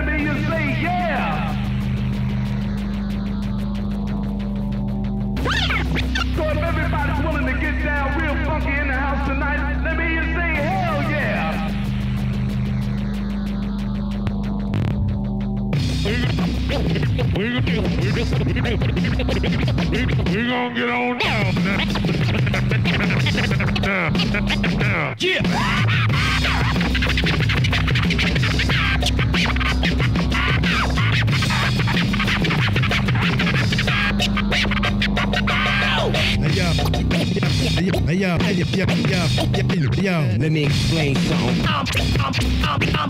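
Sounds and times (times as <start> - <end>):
fast ticking beat: 0.0 - 20.6, 21.2 - 43.0
record scratching and cuts: 0.0 - 43.0.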